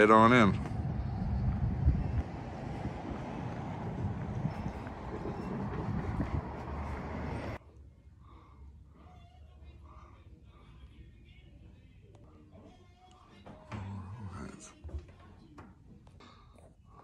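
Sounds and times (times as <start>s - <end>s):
light bumps: 0.0s - 7.6s
street rushing noise: 0.0s - 7.6s.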